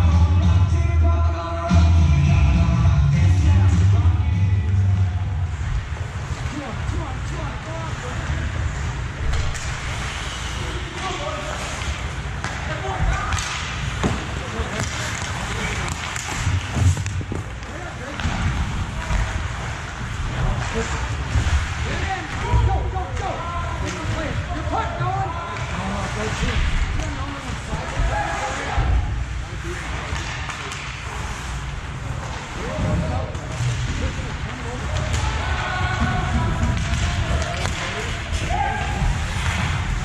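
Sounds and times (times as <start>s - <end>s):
chatter of voices echoing: 32.0s - 39.8s.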